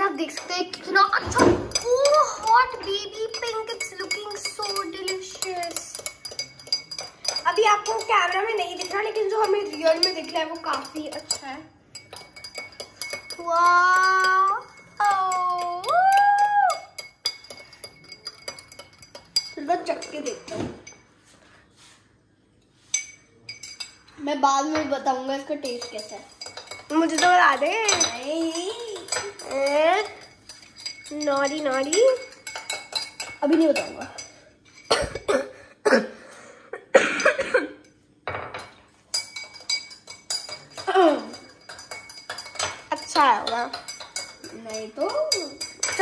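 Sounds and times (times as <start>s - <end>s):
spoon clinking against glass: 1.7s - 21.1s, 22.9s - 24.2s, 25.6s - 35.4s, 37.2s - 46.0s
spoon stirring in glass: 1.7s - 21.9s, 22.8s - 24.8s, 25.5s - 35.3s, 37.8s - 46.0s.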